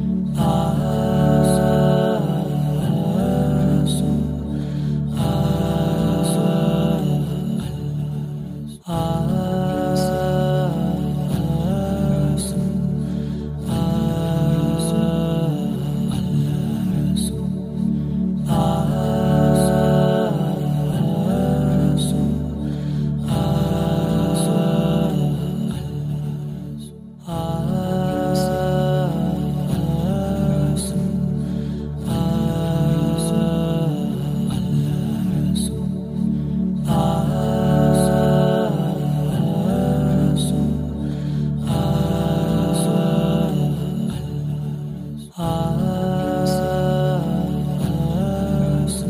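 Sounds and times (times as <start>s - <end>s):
voices chanting in harmony: 0.0s - 49.0s.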